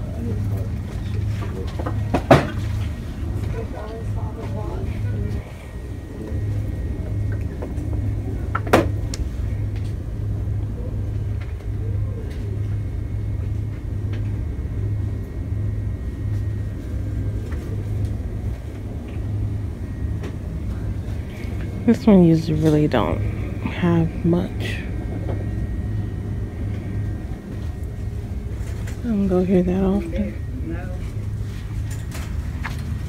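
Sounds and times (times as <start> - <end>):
handled microphone rumble: 0.0 - 33.0.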